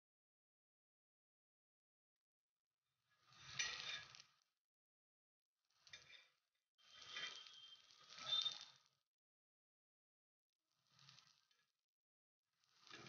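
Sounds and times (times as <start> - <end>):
metal spatula scraping griddle: 3.3 - 4.2, 5.8 - 8.8, 12.8 - 13.0.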